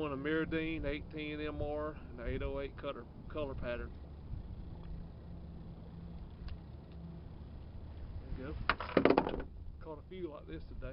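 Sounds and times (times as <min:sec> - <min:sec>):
faint hum: 0:00.0 - 0:10.9
low outdoor rumble: 0:00.0 - 0:10.9.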